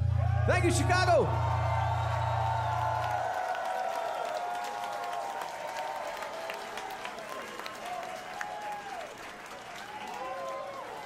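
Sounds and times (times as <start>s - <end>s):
concert crowd cheering and applauding: 0.0s - 11.0s.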